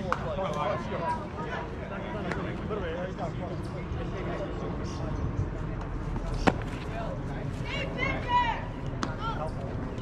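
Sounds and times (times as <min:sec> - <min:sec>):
outdoor background noise: 0:00.0 - 0:10.0
baseball smacking into leather mitt: 0:06.2 - 0:06.9.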